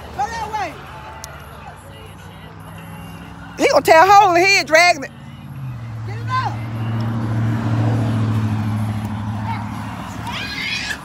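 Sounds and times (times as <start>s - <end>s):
motor vehicle engine hum: 0.0s - 11.0s.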